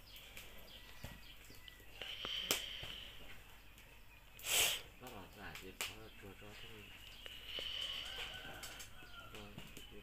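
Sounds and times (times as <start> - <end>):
rooster crowing: 7.5 - 9.8.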